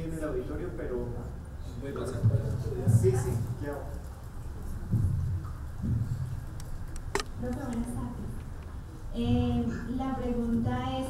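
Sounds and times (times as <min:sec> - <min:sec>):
microphone handling thumps: 0:02.2 - 0:03.5, 0:04.7 - 0:08.6.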